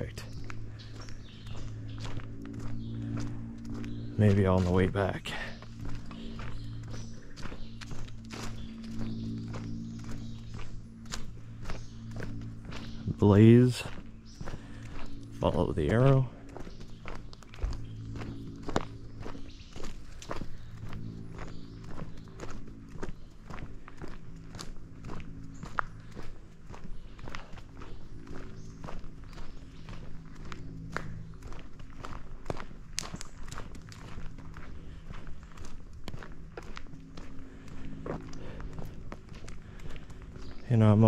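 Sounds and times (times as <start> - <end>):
footsteps crunching on dirt trail: 0.0 - 41.0.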